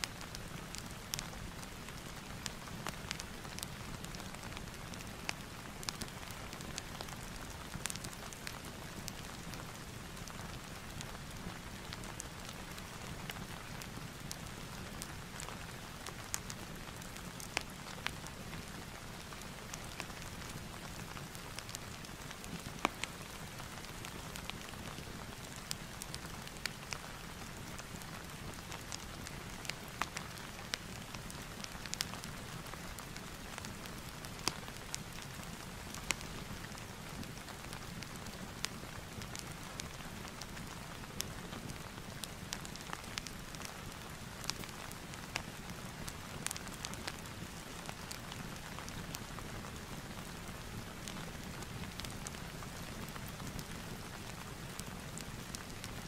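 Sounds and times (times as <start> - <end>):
steady rain hiss: 0.0 - 56.0
fireplace crackling: 0.2 - 55.9.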